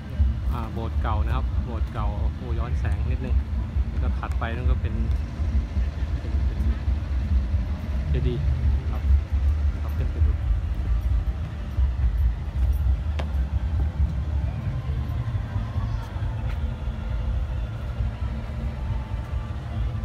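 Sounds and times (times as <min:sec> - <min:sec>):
steady low rumble: 0:00.0 - 0:20.0
man's voice: 0:04.0 - 0:05.2, 0:08.1 - 0:10.6.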